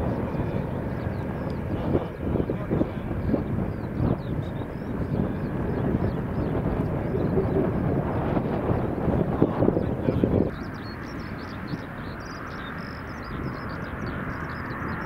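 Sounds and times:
distant jet engines rumbling: 0:00.0 - 0:15.0.

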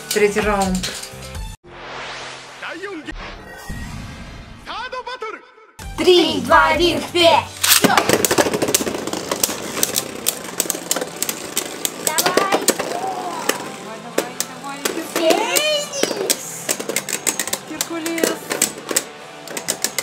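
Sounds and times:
spinning tops clattering: 0:07.7 - 0:13.8, 0:14.4 - 0:20.0.

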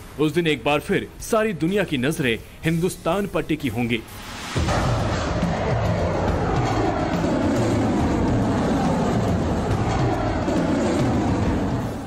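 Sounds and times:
rocket engines rumbling: 0:04.5 - 0:12.0.

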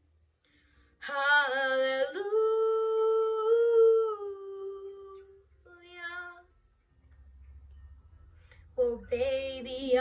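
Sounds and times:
boy singing unaccompanied: 0:08.8 - 0:10.0.

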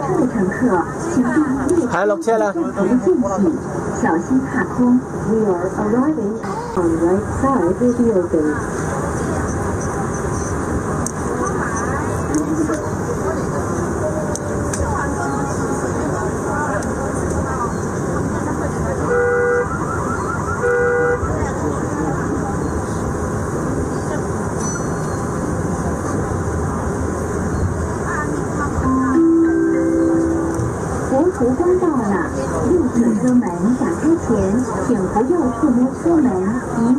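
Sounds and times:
metro train rumble: 0:00.0 - 0:36.9.

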